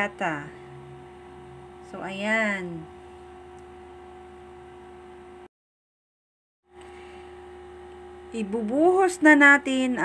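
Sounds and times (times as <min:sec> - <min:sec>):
faint steady hum: 0:00.0 - 0:05.5, 0:06.7 - 0:10.0.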